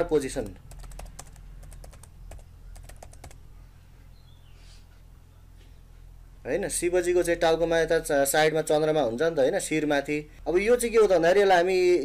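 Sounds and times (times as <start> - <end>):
keyboard typing: 0.4 - 3.4.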